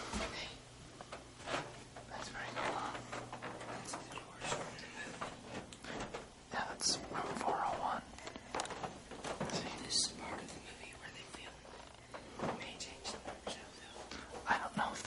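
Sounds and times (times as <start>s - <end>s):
people whispering: 2.1s - 5.3s, 6.5s - 8.1s, 9.4s - 11.7s, 12.4s - 15.0s.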